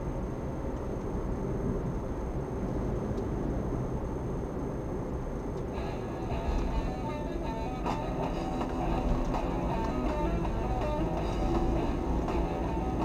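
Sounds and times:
car road and engine noise: 0.0s - 13.0s
car radio music: 5.8s - 13.0s.

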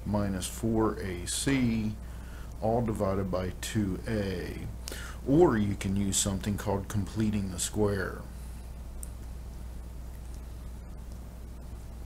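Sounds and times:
electrical hum with hiss: 0.0s - 12.0s.

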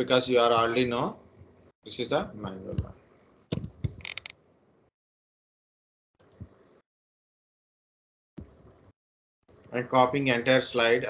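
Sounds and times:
computer mouse clicks: 3.5s - 4.4s.

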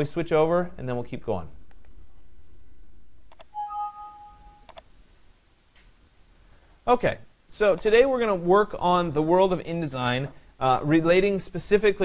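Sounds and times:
clicks: 3.3s - 3.6s, 4.6s - 4.9s
electronic two-tone beep: 3.5s - 4.7s.

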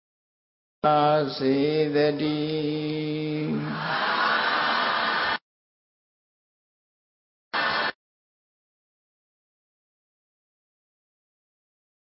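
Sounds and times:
man chanting: 0.8s - 3.9s.

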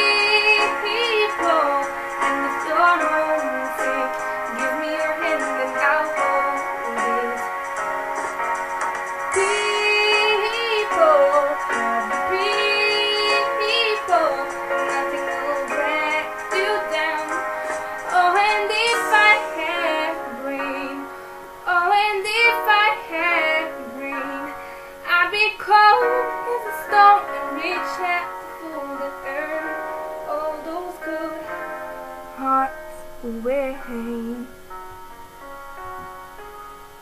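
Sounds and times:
young woman singing: 0.0s - 7.9s, 9.3s - 34.6s
instrumental backing track: 0.0s - 37.0s.

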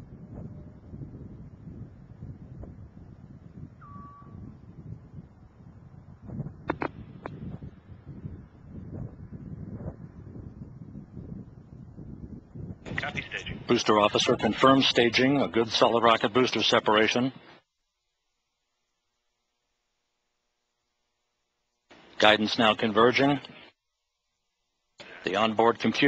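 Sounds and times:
short tone: 3.8s - 4.5s
sharp clicks: 6.7s - 7.4s.

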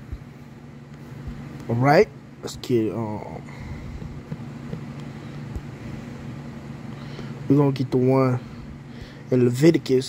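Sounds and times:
low background hum: 0.0s - 10.0s
person speaking: 1.6s - 4.9s.

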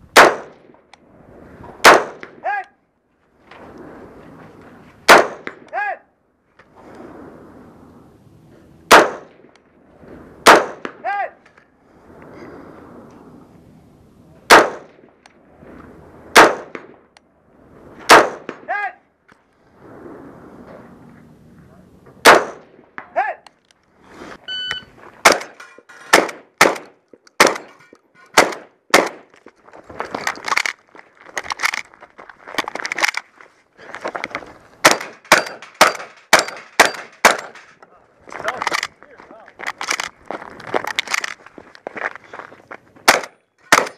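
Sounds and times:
rifle shots: 0.1s - 0.7s, 1.8s - 2.4s, 5.1s - 5.7s, 8.9s - 9.5s, 10.4s - 11.0s, 14.5s - 15.0s, 16.3s - 17.0s, 18.1s - 18.7s, 22.2s - 22.8s, 25.2s - 29.3s, 34.8s - 37.6s, 43.0s - 43.9s.

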